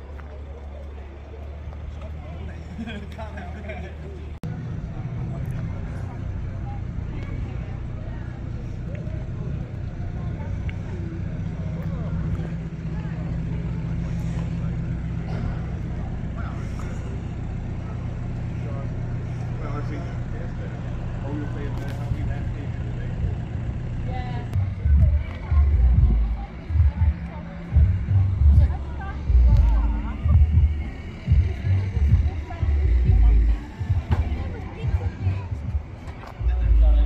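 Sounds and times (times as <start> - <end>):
car engine idling: 0.0 - 37.0
indistinct voices: 0.0 - 37.0.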